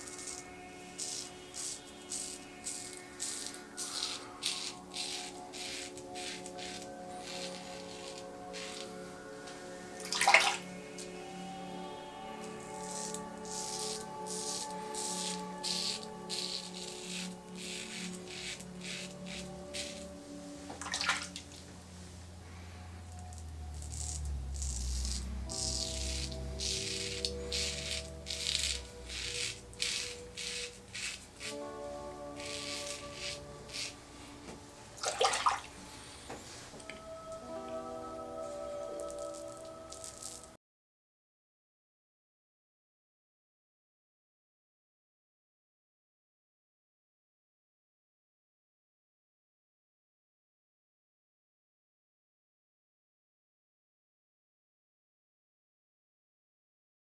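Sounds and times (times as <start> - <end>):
razor scratching through stubble: 0.0 - 9.0, 12.3 - 20.3, 23.2 - 34.4, 39.0 - 40.6
background music with chords: 0.0 - 40.6.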